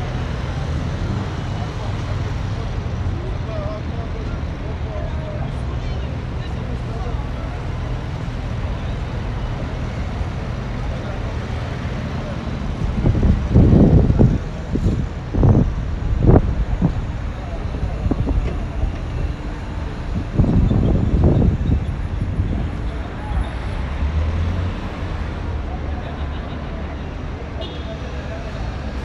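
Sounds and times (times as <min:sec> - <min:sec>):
passersby talking faintly: 0:00.0 - 0:29.0
traffic rumble: 0:00.0 - 0:29.0.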